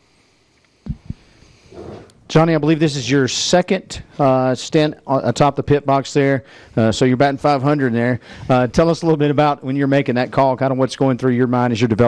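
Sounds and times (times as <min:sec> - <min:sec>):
faint breath: 0:00.0 - 0:02.1, 0:06.4 - 0:06.8, 0:08.2 - 0:08.6
dull low thumps: 0:00.9 - 0:01.2.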